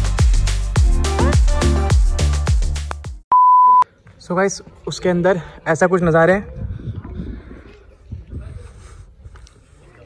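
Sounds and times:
electronic music with bass drum: 0:00.0 - 0:03.2
loud steady beep: 0:03.3 - 0:03.8.

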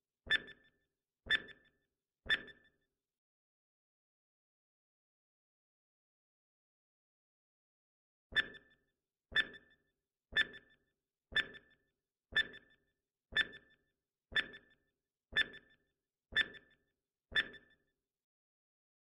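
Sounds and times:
timer tick with bright ring: 0:00.3 - 0:00.7, 0:01.3 - 0:01.7, 0:02.3 - 0:02.8, 0:09.4 - 0:17.8.

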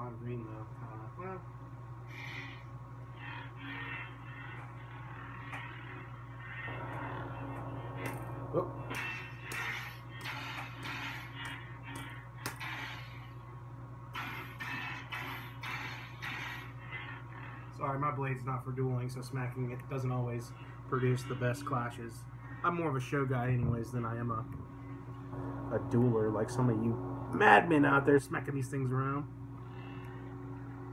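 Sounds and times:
lightsaber blade hum: 0:02.1 - 0:17.7, 0:24.8 - 0:28.5
lightsaber clash effect: 0:06.7 - 0:13.1.

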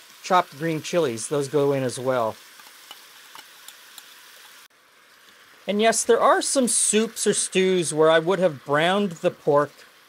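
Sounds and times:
faint sizzling in a pot: 0:00.0 - 0:10.0.

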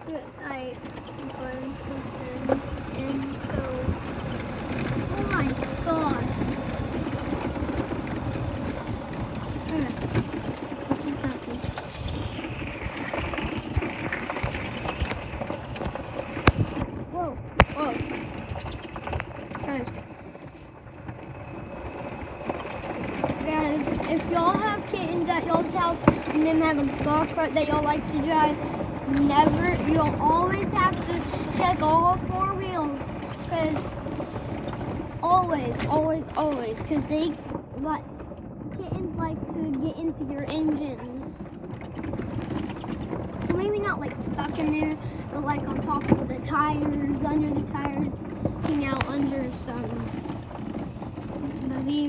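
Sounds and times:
indistinct talking: 0:00.0 - 0:34.3, 0:43.4 - 0:50.3, 0:51.3 - 0:52.0
golf cart running: 0:00.0 - 0:52.0.

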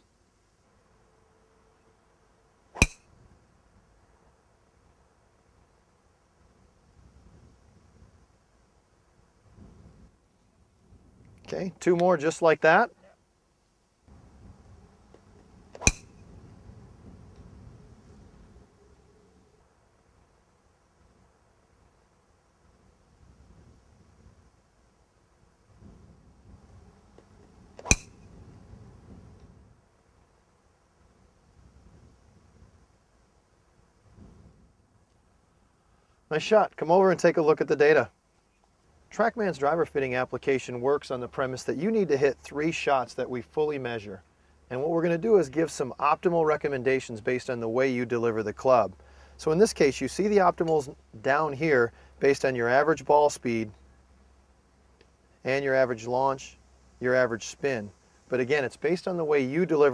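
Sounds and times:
golf driver striking ball: 0:02.8 - 0:03.1, 0:15.7 - 0:16.3, 0:27.8 - 0:28.3.

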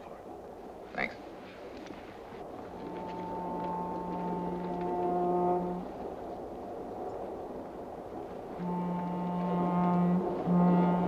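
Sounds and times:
rumbling haze: 0:00.0 - 0:11.0
low brass chords: 0:02.7 - 0:06.1, 0:08.5 - 0:11.0.

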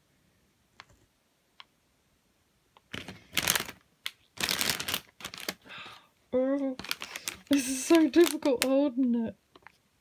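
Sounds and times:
plastic bag crinkling: 0:02.9 - 0:05.8, 0:06.7 - 0:08.9.

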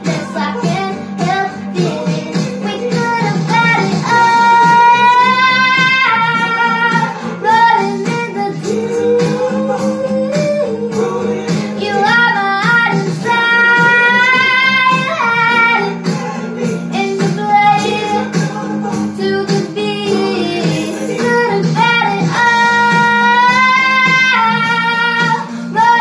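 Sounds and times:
girl singing pop song: 0:00.0 - 0:26.0
instrumental accompaniment: 0:00.0 - 0:26.0.

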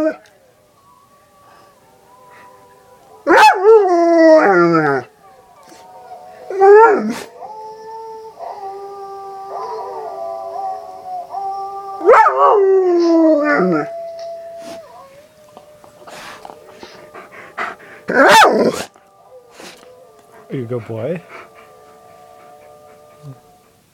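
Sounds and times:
dog howling: 0:00.0 - 0:23.8.

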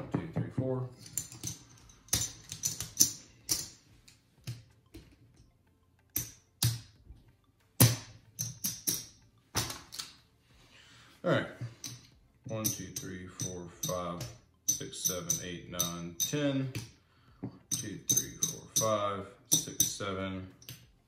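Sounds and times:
casino chips clicking together: 0:01.0 - 0:03.8.

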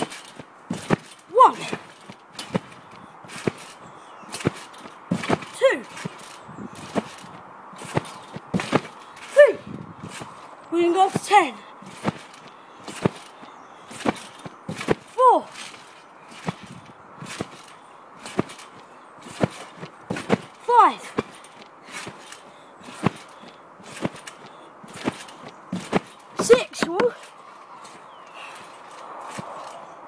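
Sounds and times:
footsteps and landing thumps: 0:00.0 - 0:29.8
person shouting: 0:09.3 - 0:09.7.

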